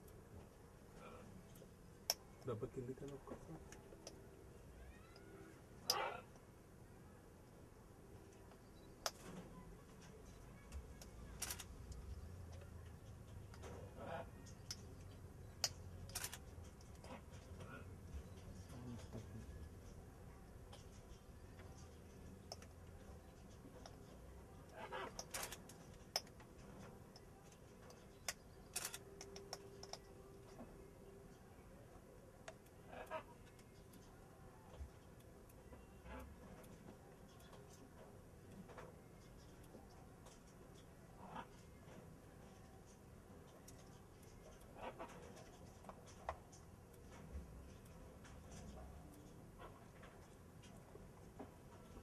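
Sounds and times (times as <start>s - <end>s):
faint sharp clicks and taps: 8.3s - 31.2s
soft clicks: 20.7s - 31.2s.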